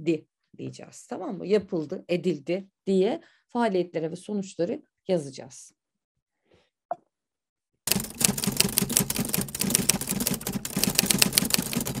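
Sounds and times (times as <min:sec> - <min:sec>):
rapid clatter of sharp clicks: 0:07.9 - 0:12.0.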